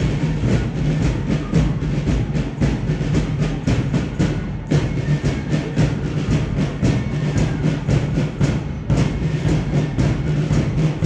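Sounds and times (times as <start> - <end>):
drum beating marching rhythm: 0.0 - 11.0.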